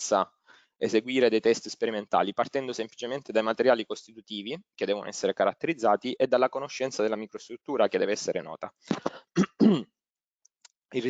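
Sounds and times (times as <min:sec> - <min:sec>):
man coughing and clearing throat: 0:08.9 - 0:10.0.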